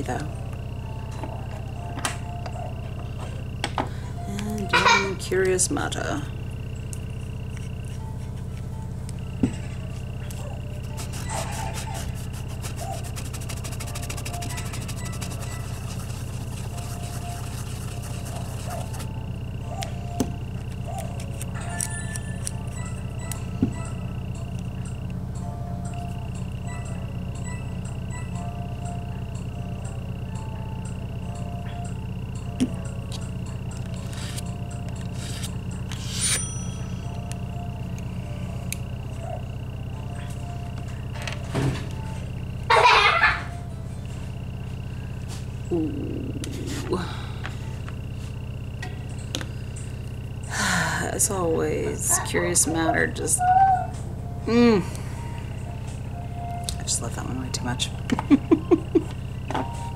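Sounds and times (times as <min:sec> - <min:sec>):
electrical hum with high whine: 0:00.0 - 0:59.9.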